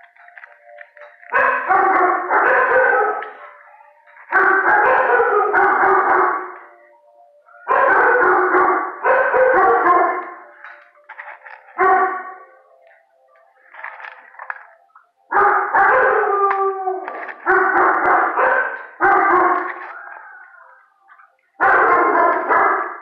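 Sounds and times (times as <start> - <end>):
dog howling: 1.4 - 6.9, 7.5 - 10.6, 15.3 - 23.0.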